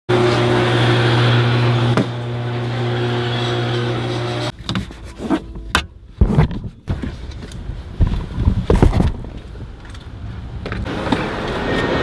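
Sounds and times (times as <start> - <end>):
loud machine hum: 0.1 - 4.5.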